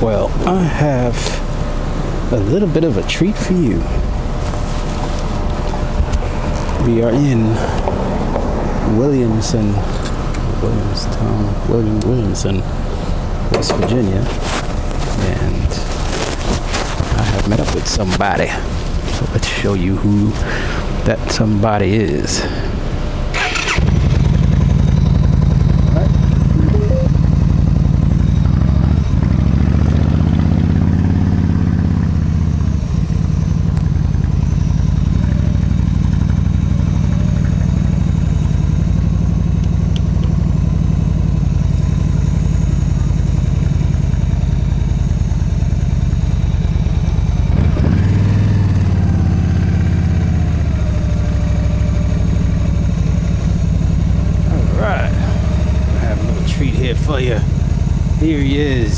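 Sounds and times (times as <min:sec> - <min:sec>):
motorcycle engine pulling away: 0:23.3 - 0:39.4, 0:46.9 - 0:58.2.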